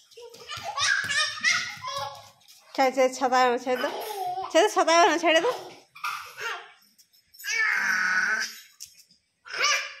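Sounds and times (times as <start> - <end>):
toddler babbling: 3.8 - 4.5.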